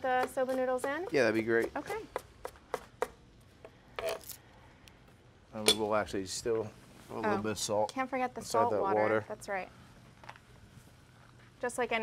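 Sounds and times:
knife chopping on cutting board: 0.1s - 3.2s.

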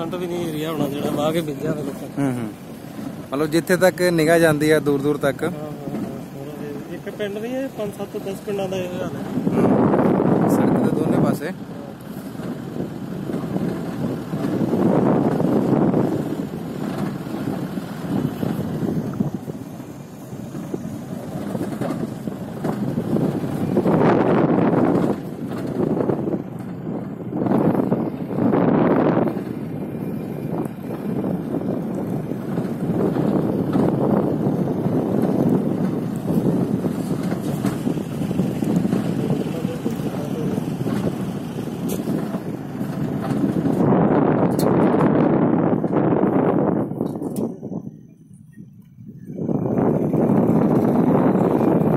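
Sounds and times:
moving vehicle travel noise: 0.0s - 51.9s
wind buffeting microphone: 0.0s - 51.9s.

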